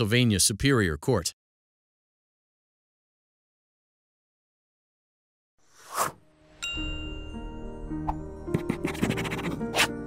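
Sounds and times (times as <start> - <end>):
bright struck chime: 6.4 - 8.3.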